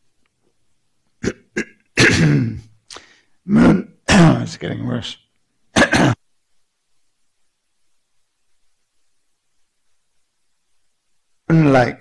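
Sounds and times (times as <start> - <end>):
man clearing his throat: 1.2 - 2.8, 5.7 - 6.2.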